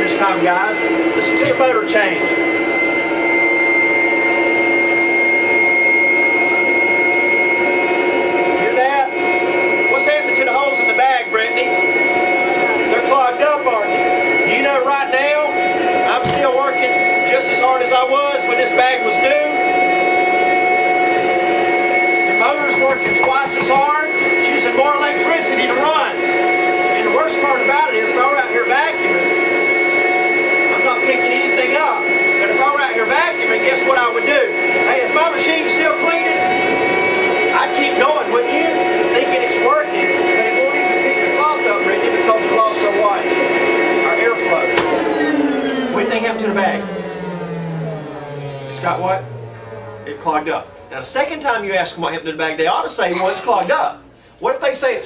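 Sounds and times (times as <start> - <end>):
vacuum cleaner whining: 0.0 - 55.0.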